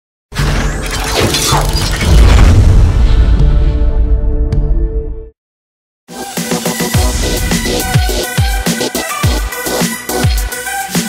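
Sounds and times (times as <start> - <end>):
glass shattering: 0.5 - 2.4
music with heavy bass: 6.1 - 11.0.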